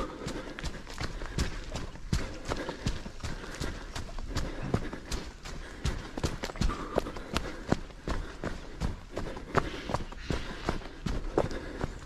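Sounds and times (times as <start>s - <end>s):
running footsteps on dirt path: 0.0s - 12.0s.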